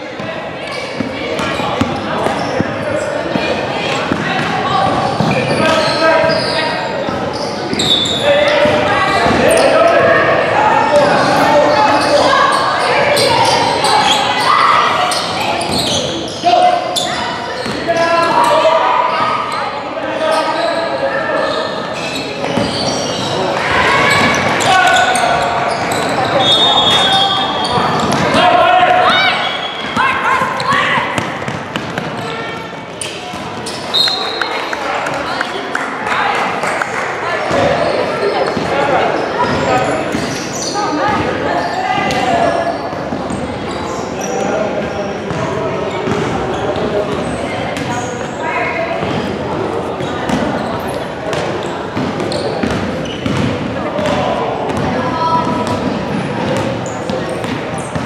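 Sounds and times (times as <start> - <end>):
voices calling out: 0.0 - 58.0
shoe squeaks: 0.6 - 3.5, 5.0 - 10.0, 11.1 - 28.4, 29.0 - 31.0, 32.2 - 34.5, 38.2 - 44.5, 45.1 - 49.4, 50.0 - 53.4
basketball bouncing: 29.8 - 32.3, 50.3 - 50.5, 51.3 - 56.8.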